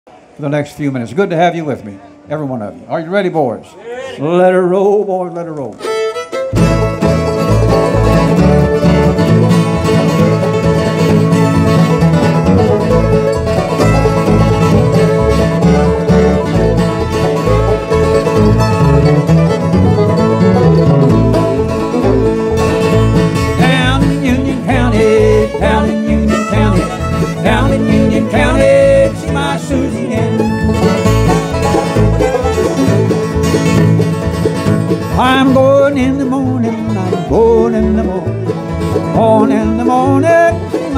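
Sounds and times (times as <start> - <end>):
bluegrass band playing: 0.1 - 40.9
wavering fiddle line: 5.8 - 40.9
upright bass steady beat: 6.6 - 40.9.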